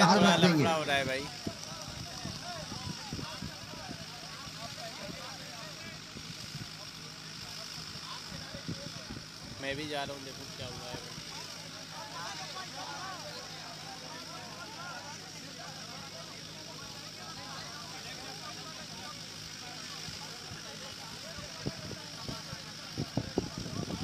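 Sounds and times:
men arguing: 0:00.0 - 0:03.0.

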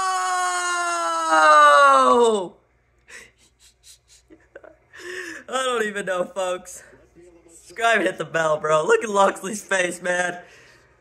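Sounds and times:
man gasping: 0:05.0 - 0:05.5.

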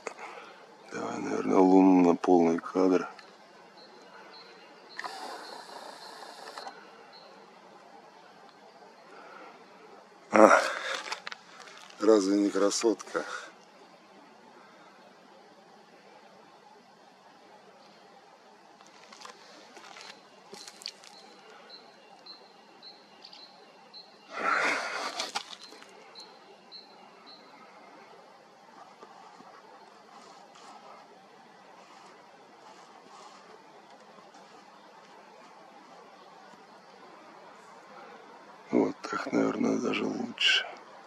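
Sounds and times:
camera zoom motor whirring: 0:04.9 - 0:06.8
zoom motor click: 0:04.9 - 0:06.8
loud noisy rustle: 0:31.7 - 0:36.1.

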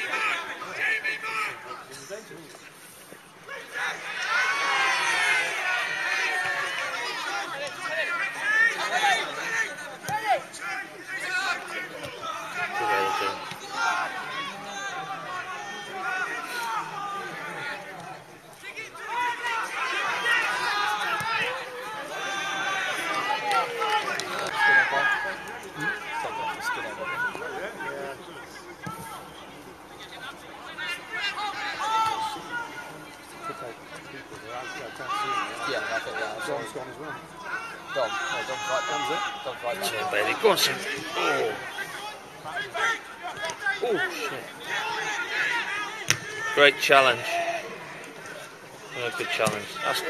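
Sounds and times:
crowd chattering: 0:00.0 - 0:50.0.

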